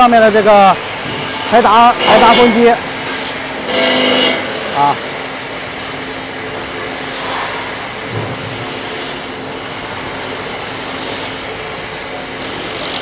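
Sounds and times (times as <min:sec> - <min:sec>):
factory floor hum: 0:00.0 - 0:13.0
power driver running: 0:00.7 - 0:06.5.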